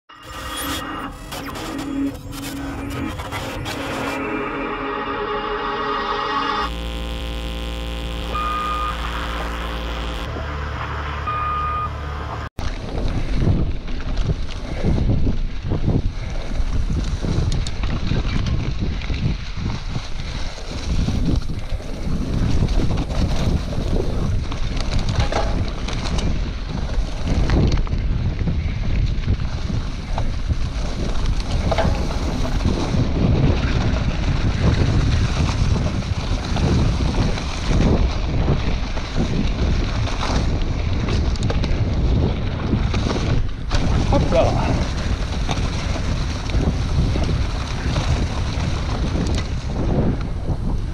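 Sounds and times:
bike knocking and rattling: 12.6s - 50.9s
bike tyres rumbling on dirt: 12.6s - 50.9s
wind buffeting microphone: 12.6s - 50.9s.

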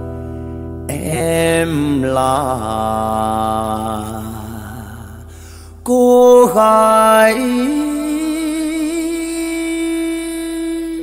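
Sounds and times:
person singing long drawn-out notes: 0.9s - 11.0s.

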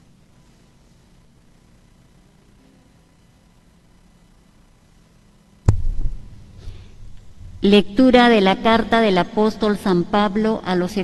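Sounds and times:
microphone handling thump: 5.7s - 6.6s.

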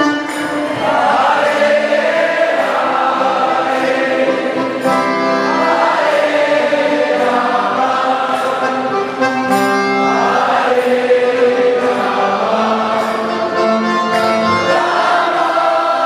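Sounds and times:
group chanting in held notes: 0.6s - 9.0s, 10.1s - 13.3s, 14.7s - 16.0s.

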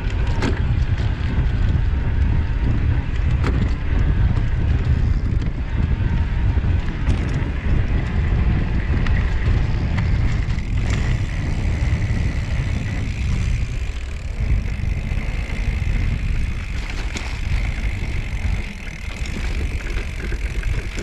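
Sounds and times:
bike tyres rolling on dirt: 0.0s - 21.0s
wind buffeting microphone: 0.0s - 21.0s.

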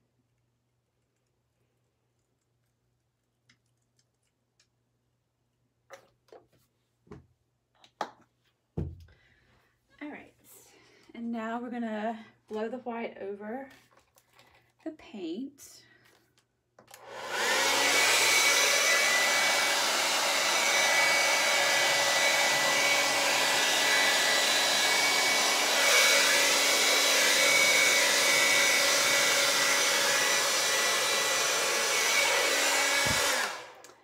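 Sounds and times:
hair dryer blowing: 16.9s - 34.0s.

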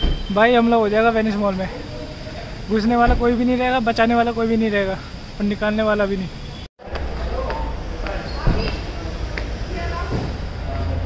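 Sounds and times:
thump: 10.1s - 10.4s.

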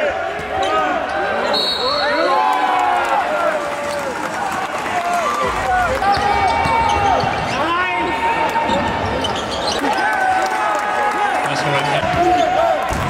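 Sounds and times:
players' voices: 0.0s - 13.0s
sneakers squeaking: 6.0s - 7.7s, 8.6s - 10.0s.

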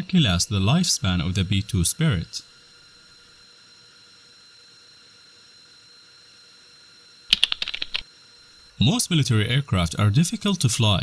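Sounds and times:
faint hum with high whine: 0.0s - 11.0s
burst of rapid sharp clicks: 7.3s - 8.0s.

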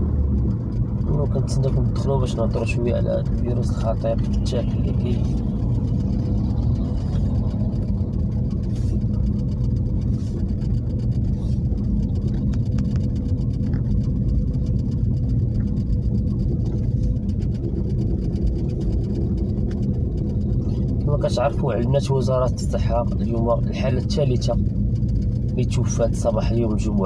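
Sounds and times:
car engine and road noise: 0.0s - 27.0s.

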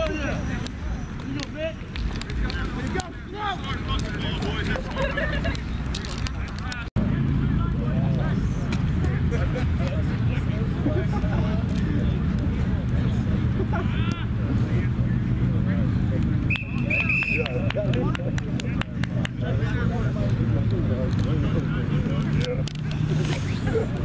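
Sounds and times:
faint voices: 0.0s - 24.0s
low rumble of road traffic: 0.0s - 24.0s
sharp claps: 16.2s - 19.5s
referee's whistle blasts: 16.5s - 17.6s.

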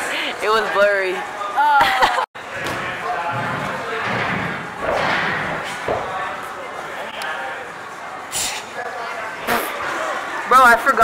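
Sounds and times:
busy gym noise: 0.0s - 11.0s.

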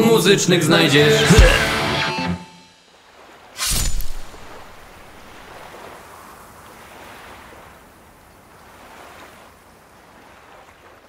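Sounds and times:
waves washing in: 2.8s - 11.0s.

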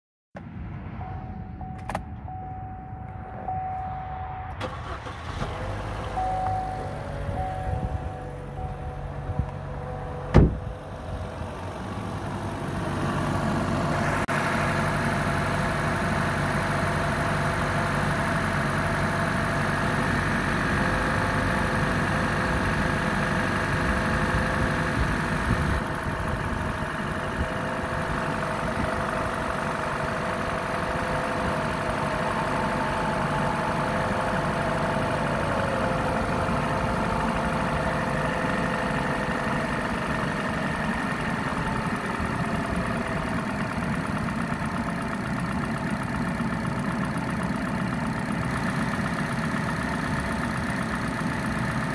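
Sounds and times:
car engine idling: 0.4s - 51.9s.

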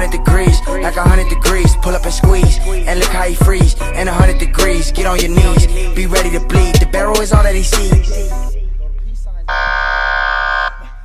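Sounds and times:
buzzer-like tone: 9.5s - 11.0s.

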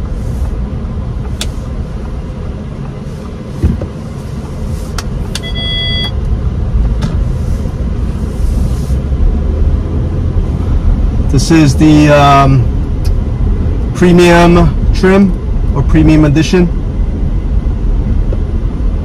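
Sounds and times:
car engine and tyre rumble: 0.0s - 19.0s
brief electronic tone: 5.4s - 6.2s.

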